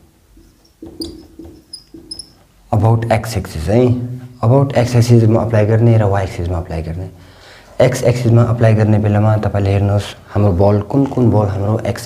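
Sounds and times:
marker squeaking on whiteboard: 0.3s - 2.5s
man speaking: 2.7s - 7.2s, 7.8s - 12.0s.

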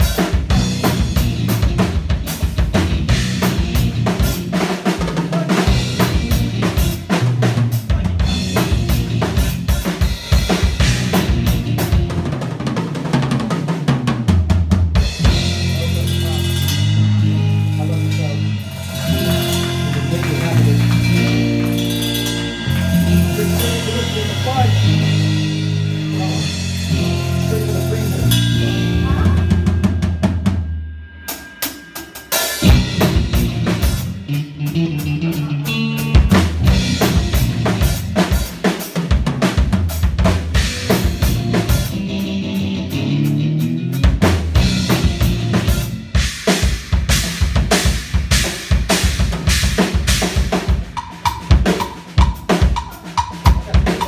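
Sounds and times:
electric guitar: 0.0s - 30.6s, 32.4s - 54.0s
bass guitar: 0.0s - 31.2s, 32.4s - 54.0s
drum kit: 0.0s - 54.0s.

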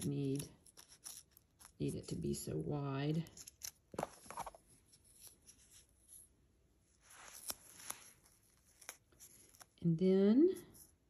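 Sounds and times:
paper backing peeling rustle: 0.0s - 2.3s, 6.9s - 9.8s.

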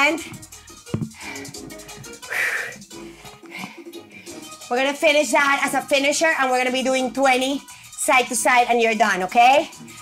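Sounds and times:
workout music: 0.0s - 10.0s.

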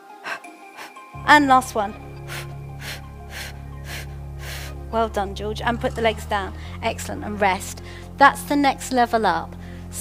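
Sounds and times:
background music with low drone: 0.0s - 10.0s
sharp exhaled breaths: 2.2s - 4.9s.

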